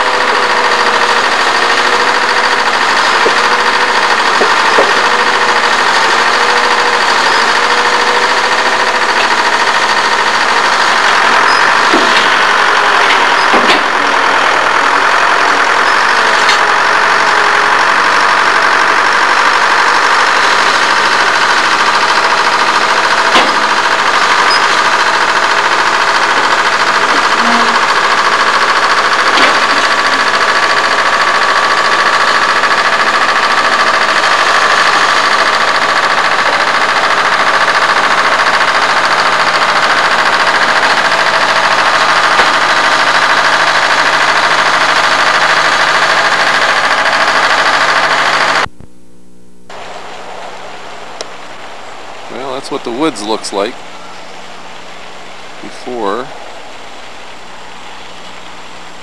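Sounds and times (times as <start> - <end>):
diesel engine running loudly: 0.0 - 48.8, 49.7 - 59.0.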